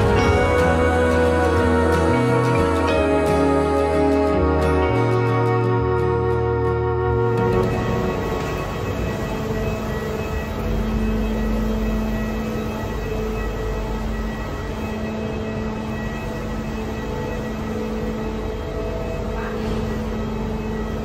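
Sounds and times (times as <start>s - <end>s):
machinery hum with steady tones: 0.0s - 21.0s.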